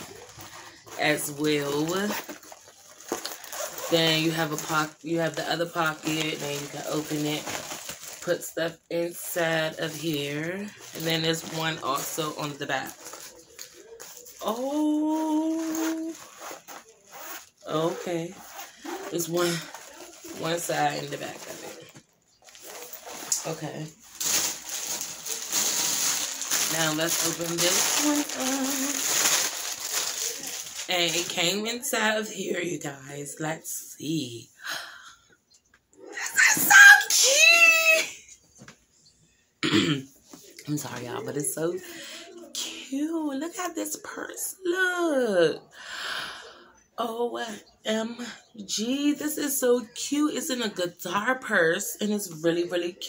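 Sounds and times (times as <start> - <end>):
backpack rustling: 0.0 - 4.9, 10.4 - 30.9.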